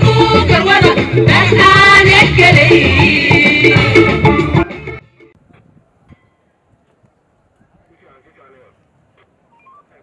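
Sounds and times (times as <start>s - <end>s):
short beeping tones: 9.5s - 10.0s.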